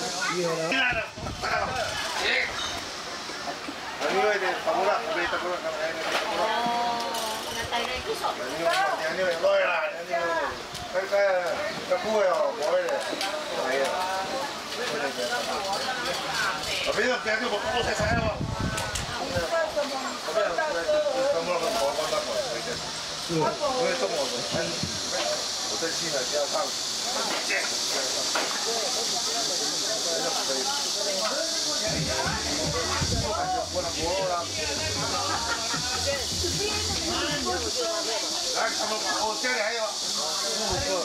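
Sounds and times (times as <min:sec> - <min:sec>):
people talking: 0:00.0 - 0:41.0
steady high hiss: 0:00.0 - 0:41.0.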